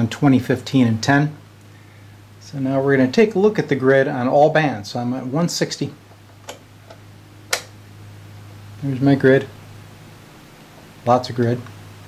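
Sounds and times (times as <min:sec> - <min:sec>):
steady low hum: 0:00.0 - 0:12.0
switch click: 0:06.4 - 0:07.8.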